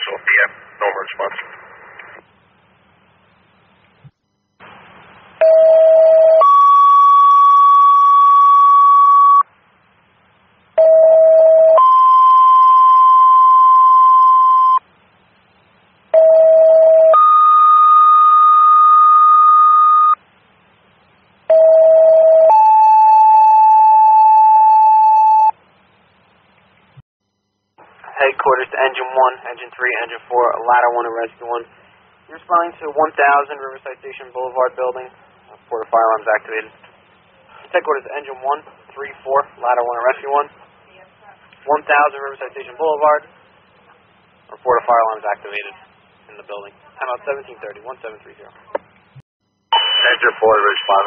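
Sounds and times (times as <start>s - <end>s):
two-tone alert tones over radio: 49.8s - 51.0s.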